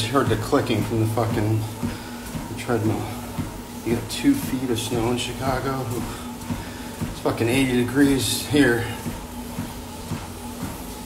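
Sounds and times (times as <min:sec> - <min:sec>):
footfalls on treadmill belt: 0:00.0 - 0:11.0
treadmill humming: 0:00.0 - 0:11.0.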